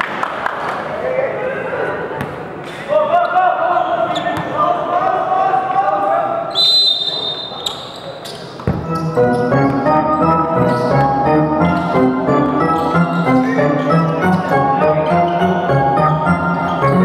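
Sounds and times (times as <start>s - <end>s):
referee's whistle: 6.5s - 8.1s
basketball bouncing: 8.6s - 9.0s
music: 8.8s - 17.0s.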